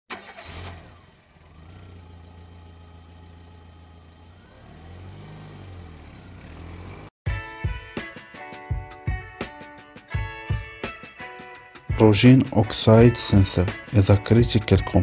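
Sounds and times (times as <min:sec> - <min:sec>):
car engine starting and idling: 0:00.1 - 0:07.1
music with plucked notes and beat: 0:07.3 - 0:15.0.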